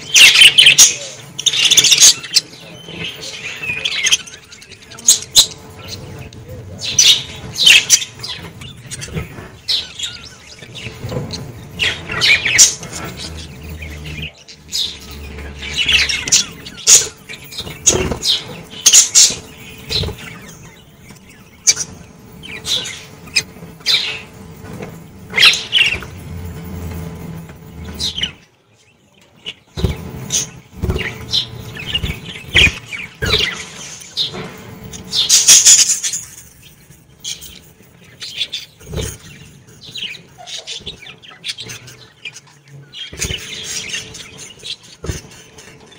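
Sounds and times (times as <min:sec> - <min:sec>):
budgerigars chirping and chattering: 0:00.0 - 0:45.9.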